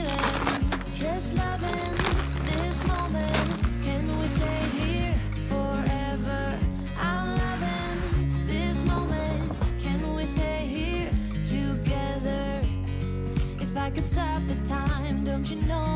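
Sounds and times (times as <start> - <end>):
pop song with vocals: 0.0 - 15.9.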